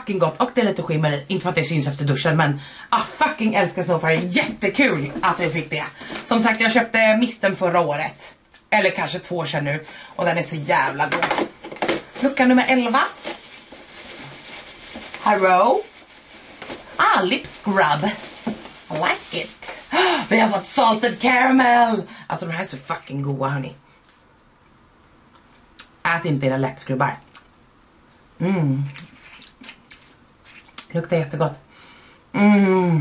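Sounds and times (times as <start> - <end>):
shredded paper rustling: 10.2 - 21.6.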